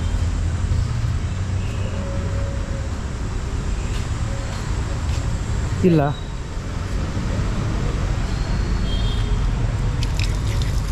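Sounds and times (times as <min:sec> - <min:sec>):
outdoor urban background rumble: 0:00.0 - 0:10.9.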